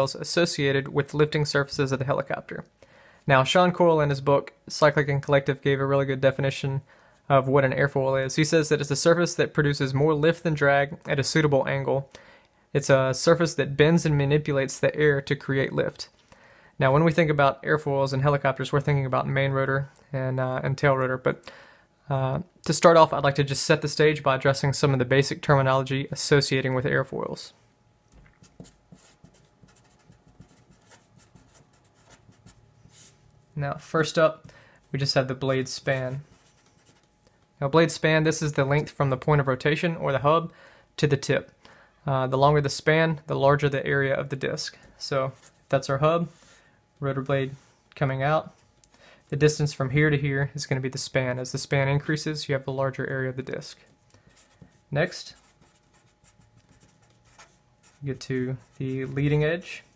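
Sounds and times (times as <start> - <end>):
marker writing on paper: 28.4 - 33.2, 54.4 - 59.4.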